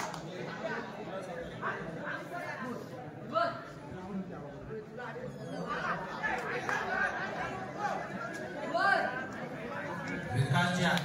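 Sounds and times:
crowd shouting and chattering: 0.0s - 11.0s.

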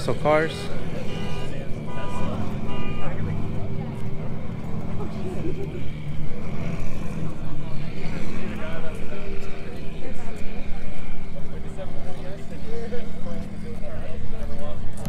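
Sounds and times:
people talking: 0.0s - 15.0s
steady low rumble: 0.0s - 15.0s.

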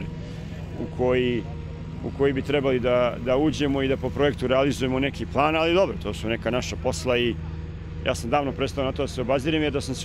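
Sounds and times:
diesel engine idling: 0.0s - 10.0s.

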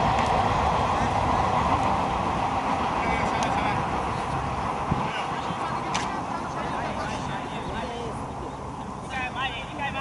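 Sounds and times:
steady rushing background noise: 0.0s - 10.0s.

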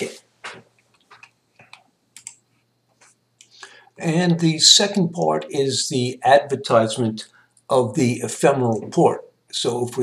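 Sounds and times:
computer mouse clicks: 1.0s - 2.4s.

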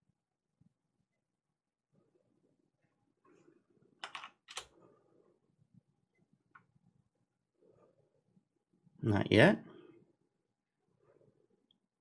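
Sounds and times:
computer keyboard typing: 4.0s - 4.7s.

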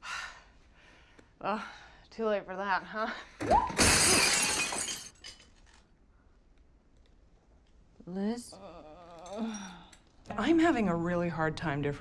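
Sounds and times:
glass shattering and clattering: 3.4s - 5.8s.

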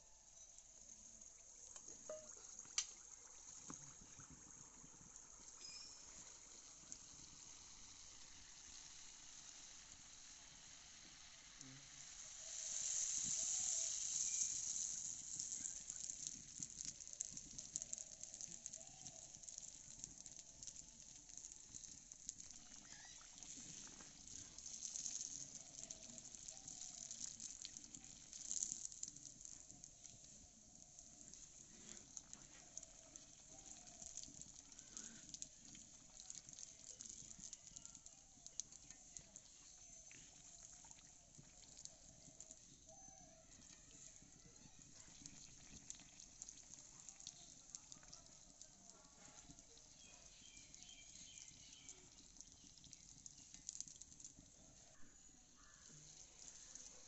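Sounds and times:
hot oil sizzling: 0.0s - 57.0s
oil popping and crackling: 0.0s - 57.0s.

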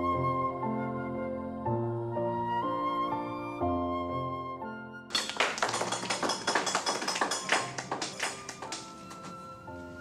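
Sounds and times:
music: 0.0s - 10.0s
rapid uneven tapping and clicking: 5.1s - 9.4s.

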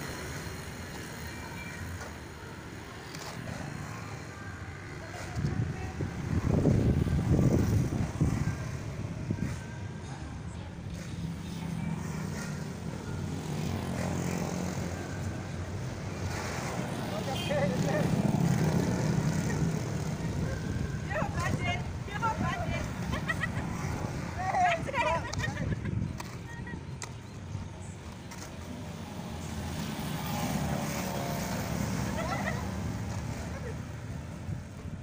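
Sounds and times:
motorbikes and cars passing: 0.0s - 35.0s.

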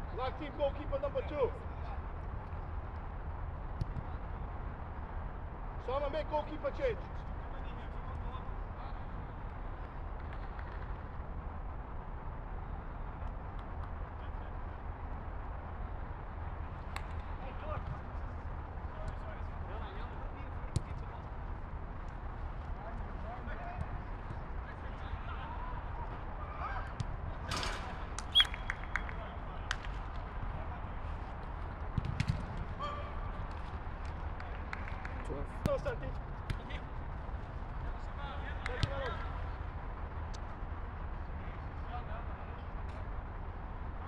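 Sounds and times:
sharp ball kicks: 31.9s - 32.7s, 36.4s - 36.7s.

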